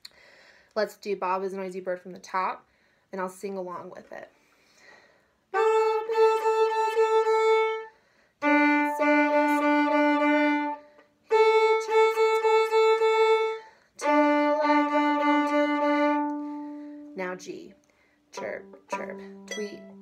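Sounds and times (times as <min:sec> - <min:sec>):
violin short repeated notes: 0:05.6 - 0:17.5, 0:18.3 - 0:20.0.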